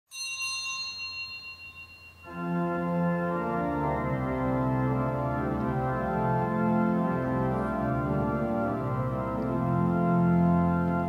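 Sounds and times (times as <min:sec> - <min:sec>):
bell ringing: 0:00.1 - 0:03.2.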